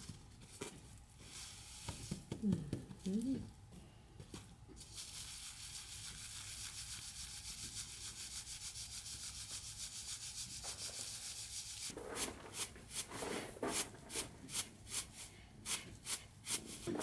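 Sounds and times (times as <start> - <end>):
grain swishing in straw basket: 0.0 - 2.0, 4.8 - 17.0
grain shaken through sieve: 0.0 - 2.3, 4.8 - 17.0.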